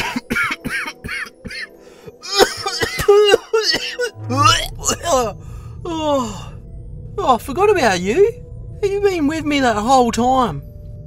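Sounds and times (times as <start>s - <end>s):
low steady hum: 4.1s - 11.0s
person sighing: 4.2s - 6.6s.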